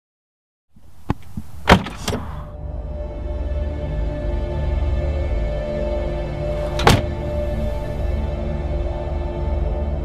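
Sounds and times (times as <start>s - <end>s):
dark music drone: 2.2s - 10.0s.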